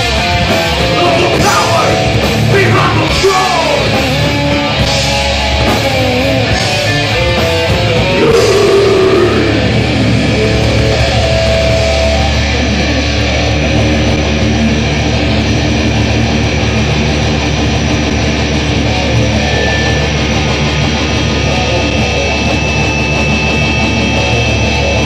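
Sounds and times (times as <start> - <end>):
guitar sliding and bending notes: 0.0 - 25.0
heavy metal band playing: 0.0 - 25.0.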